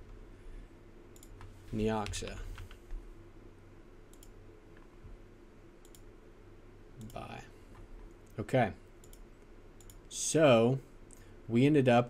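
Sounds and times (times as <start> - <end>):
faint hum: 0.0 - 12.0
computer mouse clicks: 1.1 - 3.0, 4.1 - 4.9, 5.8 - 6.1, 7.0 - 8.4, 9.0 - 10.1.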